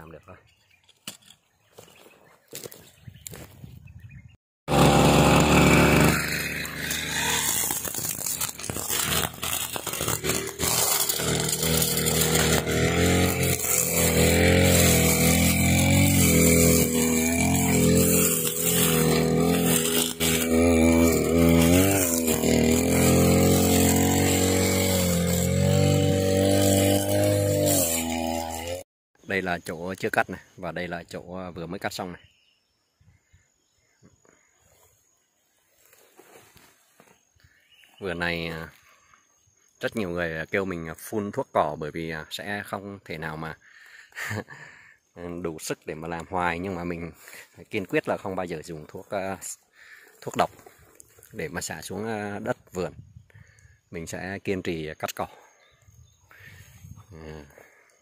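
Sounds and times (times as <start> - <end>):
brush cutter cutting grass: 4.7 - 28.8, 44.1 - 52.8, 55.4 - 57.8.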